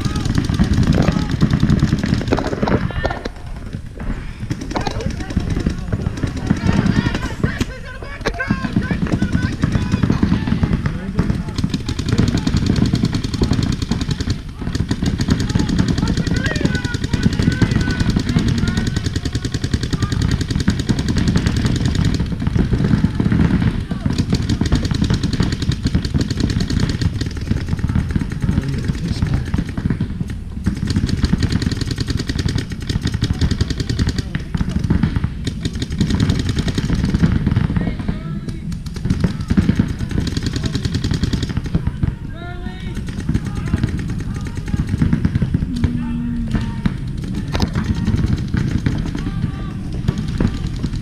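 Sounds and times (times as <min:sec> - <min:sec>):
paintball markers firing: 0:00.0 - 0:03.8, 0:04.4 - 0:51.0
heavy low rumble: 0:00.0 - 0:31.6, 0:34.2 - 0:51.0.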